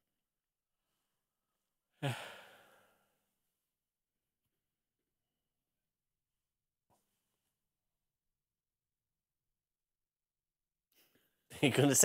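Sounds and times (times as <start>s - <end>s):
person sighing: 2.0s - 3.2s.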